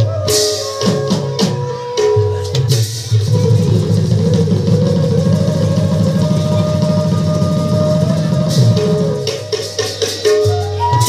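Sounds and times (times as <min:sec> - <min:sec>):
barrel drums rolling: 0:03.1 - 0:11.0.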